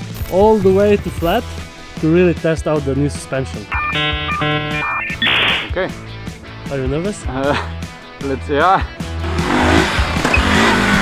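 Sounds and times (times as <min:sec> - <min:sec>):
background music: 0:00.7 - 0:10.2.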